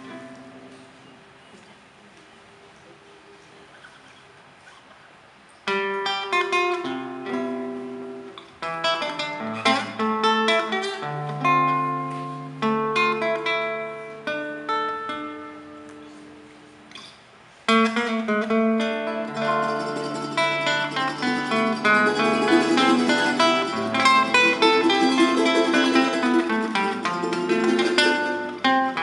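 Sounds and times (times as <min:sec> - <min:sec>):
plucked acoustic strings: 0:17.8 - 0:29.0.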